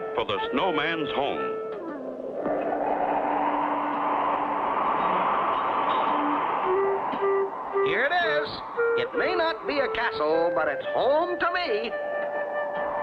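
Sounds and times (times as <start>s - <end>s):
held low music notes: 0.0s - 13.0s
rushing wind-like sound effect: 2.2s - 9.8s.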